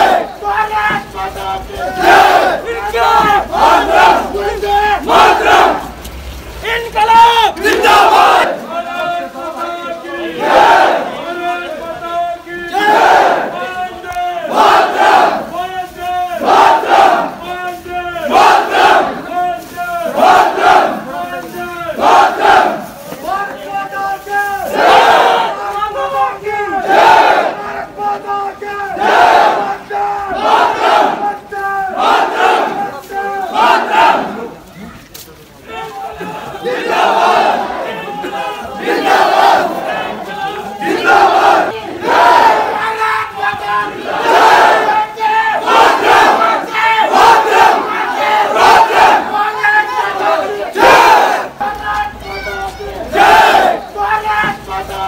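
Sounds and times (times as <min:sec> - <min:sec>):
crowd shouting together: 0:00.0 - 0:06.0, 0:06.7 - 0:34.6, 0:35.7 - 0:55.0.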